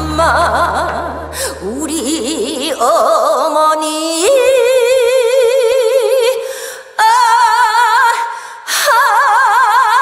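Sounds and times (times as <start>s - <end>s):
woman singing long note with vibrato: 0.0s - 6.4s.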